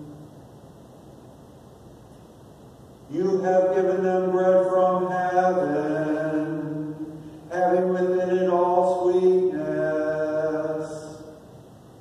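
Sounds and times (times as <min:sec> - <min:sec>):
man chanting a hymn: 0:03.1 - 0:11.5.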